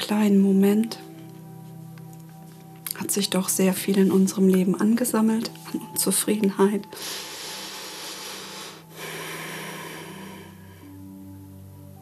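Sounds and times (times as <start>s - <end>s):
woman breathing: 6.9s - 11.2s.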